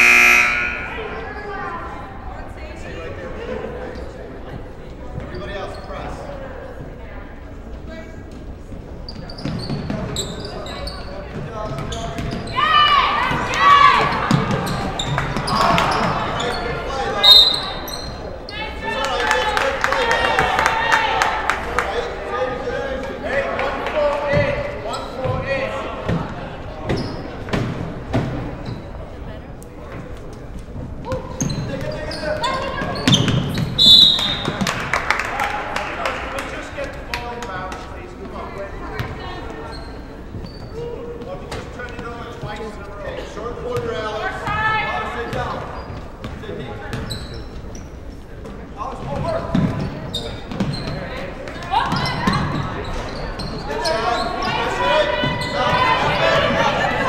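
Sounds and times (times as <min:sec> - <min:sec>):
referee whistle blast: 0:00.0 - 0:01.2, 0:17.2 - 0:17.8, 0:33.8 - 0:34.5
players and spectators shouting: 0:00.0 - 0:01.6, 0:12.5 - 0:14.5, 0:53.6 - 0:57.0.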